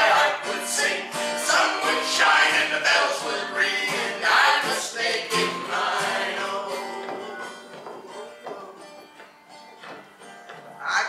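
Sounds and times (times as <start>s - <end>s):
folk group singing: 0.0s - 9.2s
acoustic guitar: 0.0s - 11.0s.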